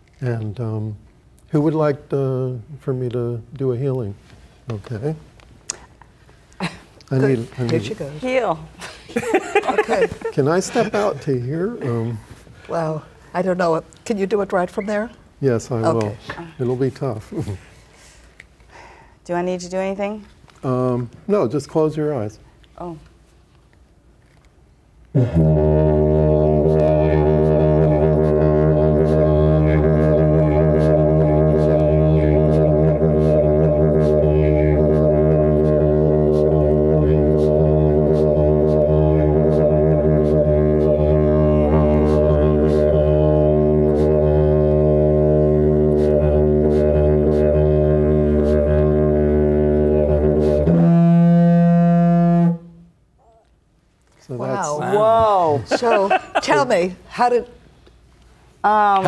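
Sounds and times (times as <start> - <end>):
didgeridoo drone: 25.2 - 52.7
didgeridoo high overblown note: 25.2 - 53.0.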